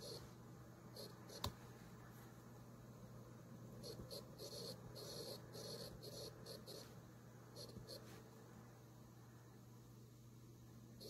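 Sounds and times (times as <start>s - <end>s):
stylus scratching on tablet screen: 0.0s - 0.3s, 1.0s - 1.5s, 3.8s - 7.0s, 7.6s - 8.2s.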